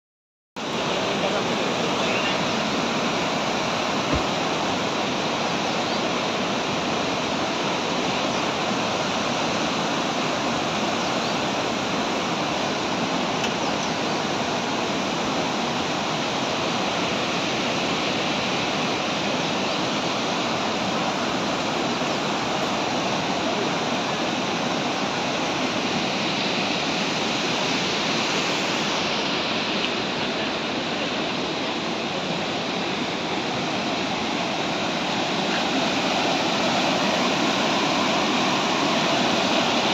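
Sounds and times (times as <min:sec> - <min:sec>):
water rushing from spillway: 0:00.6 - 0:39.9.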